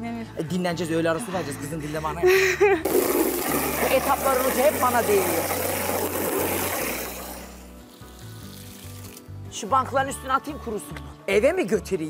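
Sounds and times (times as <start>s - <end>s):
background music: 0.0s - 12.0s
hose spray hissing: 2.9s - 9.3s.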